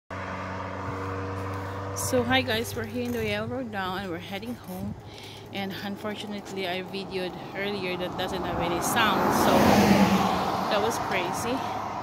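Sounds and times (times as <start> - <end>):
vehicle engine running steadily: 0.1 - 12.0.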